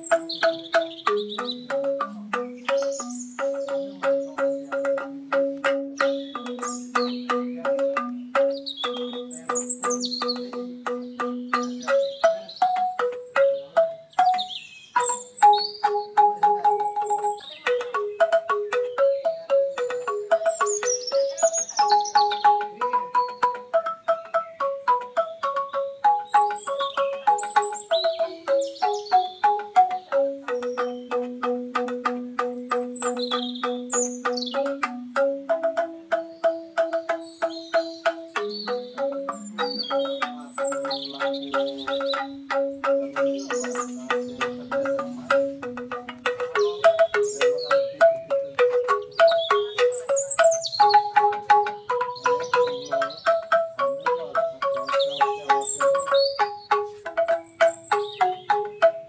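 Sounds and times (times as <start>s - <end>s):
struck bamboo melody: 0.0s - 59.0s.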